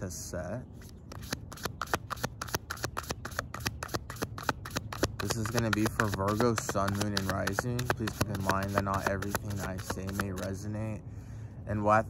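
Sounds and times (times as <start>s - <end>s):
cards being shuffled: 0.8s - 10.6s.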